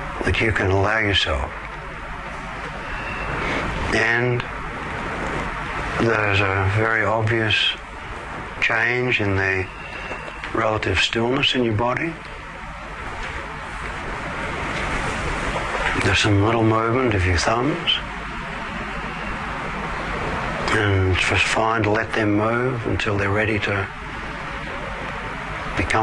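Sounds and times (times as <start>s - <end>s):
low hum: 0.0s - 26.0s
even hiss: 2.3s - 26.0s.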